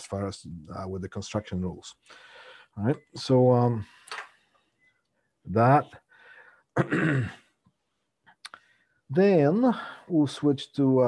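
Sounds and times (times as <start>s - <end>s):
man clearing his throat: 6.8s - 7.4s.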